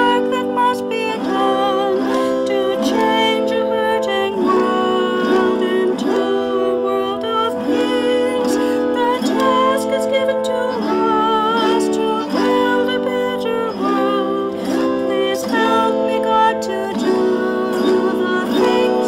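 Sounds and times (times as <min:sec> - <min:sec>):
autoharp strums: 0:00.0 - 0:19.0
woman singing: 0:00.0 - 0:19.0.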